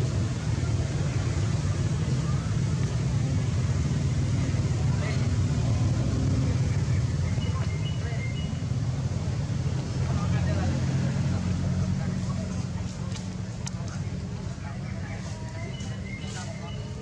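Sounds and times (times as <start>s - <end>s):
vehicle engine rumble: 0.0s - 17.0s.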